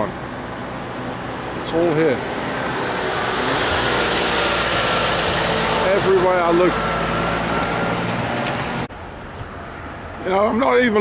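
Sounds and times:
heavy truck engine drone: 0:00.0 - 0:10.2.

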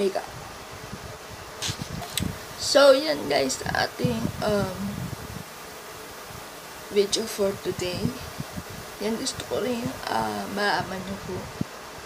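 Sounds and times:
person speaking: 0:00.0 - 0:00.3, 0:02.1 - 0:05.0, 0:06.9 - 0:08.3, 0:09.0 - 0:11.5
quiet buzzing hum: 0:00.0 - 0:12.0.

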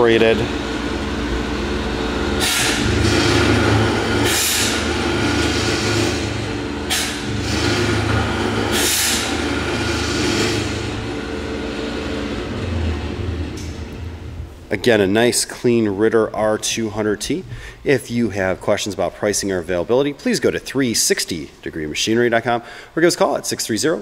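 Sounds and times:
motor running steadily: 0:00.0 - 0:14.7
short bursts of hiss: 0:02.4 - 0:03.4, 0:04.2 - 0:04.9, 0:06.9 - 0:07.7, 0:08.7 - 0:09.4.

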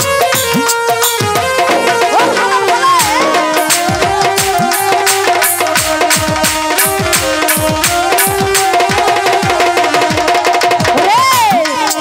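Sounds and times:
melody instrument quick notes: 0:00.0 - 0:12.0
hand drum with sliding pitch: 0:01.1 - 0:11.9.

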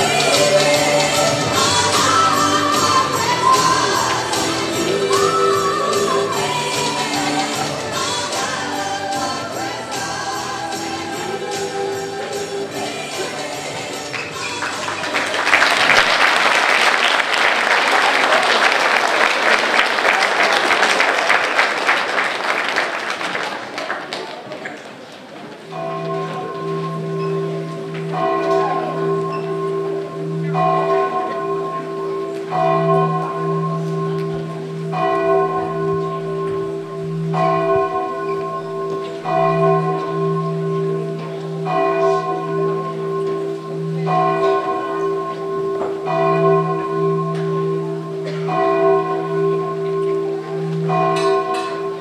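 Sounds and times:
church bells ringing: 0:00.0 - 0:16.3, 0:25.7 - 0:52.0.

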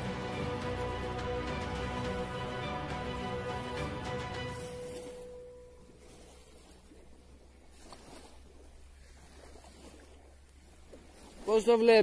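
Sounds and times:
background music: 0:00.0 - 0:06.0
calm sea waves: 0:00.0 - 0:12.0.

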